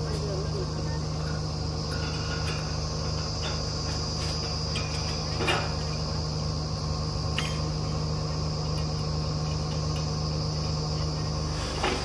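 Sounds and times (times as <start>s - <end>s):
drilling rig engine running: 0.0s - 12.0s
high-pitched whine: 0.0s - 12.0s.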